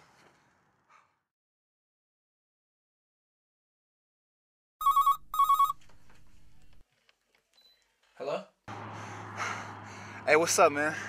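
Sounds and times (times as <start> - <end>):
phone ringing: 4.8 - 6.8.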